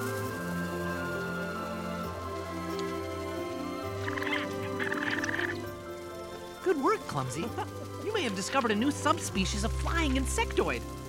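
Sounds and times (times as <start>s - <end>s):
soft background music: 0.0s - 11.0s
cartoon creature buzzing trills: 3.8s - 5.7s.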